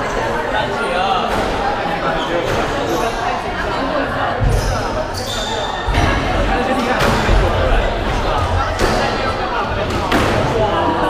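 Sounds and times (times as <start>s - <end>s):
chatter in a hall: 0.0s - 11.0s.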